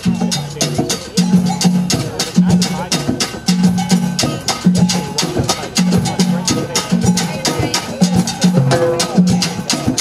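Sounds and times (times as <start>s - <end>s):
djembe strokes: 0.0s - 10.0s
steel drum band playing: 0.0s - 10.0s
low pan notes: 8.5s - 9.7s.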